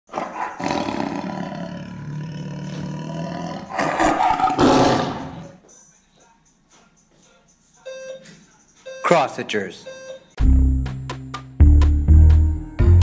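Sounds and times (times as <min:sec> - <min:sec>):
lion roaring: 0:00.1 - 0:05.6.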